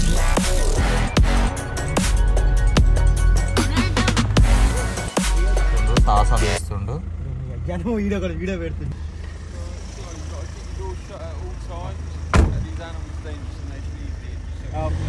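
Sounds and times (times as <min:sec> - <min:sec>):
car rumble inside cabin: 0:06.0 - 0:13.2
sharp knock: 0:12.3 - 0:12.6.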